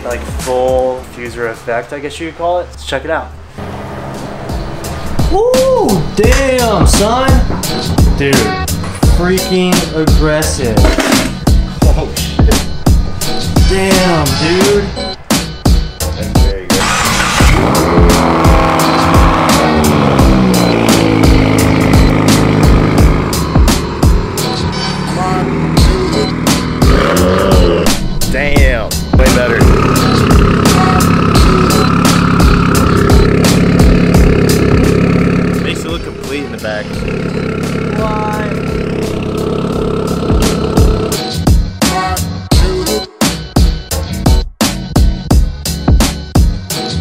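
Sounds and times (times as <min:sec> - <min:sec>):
background music with steady beat: 0:00.0 - 0:02.6, 0:04.2 - 0:47.0
car engine running: 0:16.7 - 0:41.7.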